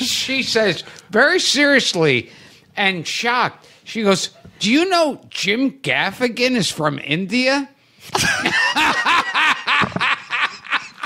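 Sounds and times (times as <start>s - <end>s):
men laughing loudly: 8.1s - 11.0s.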